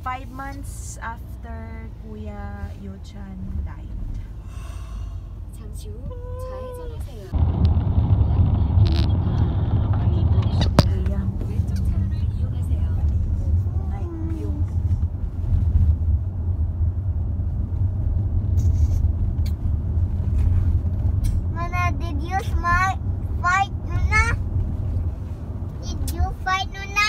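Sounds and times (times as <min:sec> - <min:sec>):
car road and engine rumble: 0:00.0 - 0:27.0
child's voice: 0:05.7 - 0:07.3, 0:21.5 - 0:24.4, 0:25.8 - 0:27.0.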